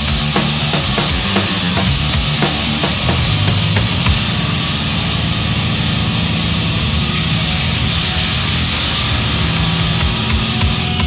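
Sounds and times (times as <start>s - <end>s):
distorted metal band playing live: 0.0s - 11.0s.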